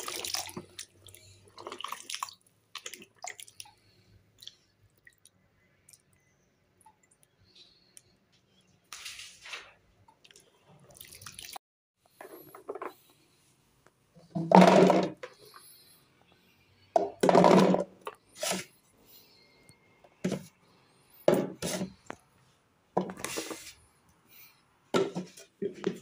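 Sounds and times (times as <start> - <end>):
water splashing and dripping: 0.0 - 6.0, 10.1 - 11.6.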